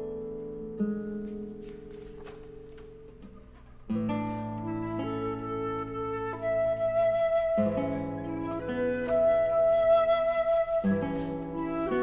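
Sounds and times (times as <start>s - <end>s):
classical guitar chord ringing: 0.0s - 9.8s
flute holding long notes: 4.3s - 12.0s.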